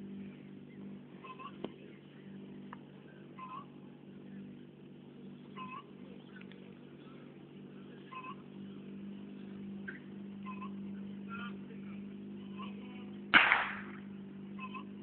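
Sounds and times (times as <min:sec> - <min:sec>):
small engine idling: 0:00.0 - 0:15.0
sharp bang: 0:13.3 - 0:14.1.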